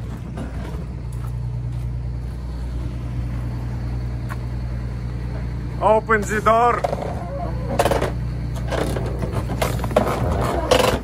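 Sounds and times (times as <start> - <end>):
diesel bus engine idling: 0.0 - 11.0.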